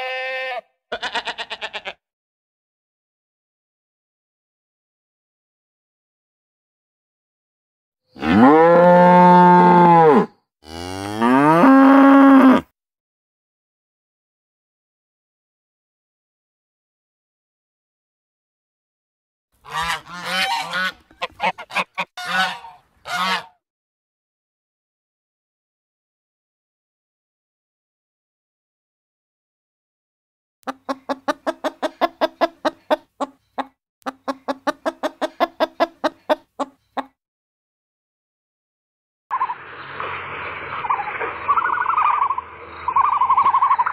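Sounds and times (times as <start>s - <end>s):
cow mooing: 8.2s - 12.7s
hen clucking rapidly: 19.7s - 23.5s, 30.7s - 37.1s, 40.8s - 43.9s.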